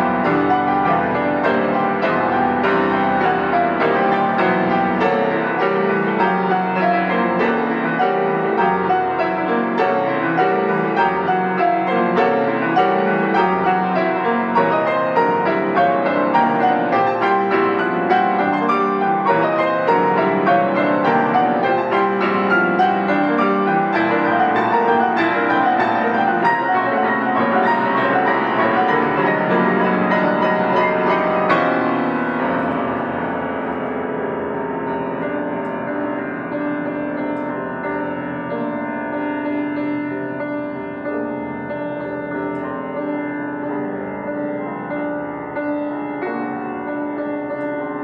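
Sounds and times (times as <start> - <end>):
piano played four hands: 0.0 - 48.0.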